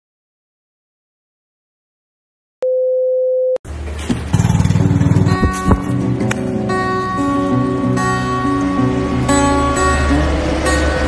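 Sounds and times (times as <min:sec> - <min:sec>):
music with fast low pulsing: 0:04.4 - 0:10.8.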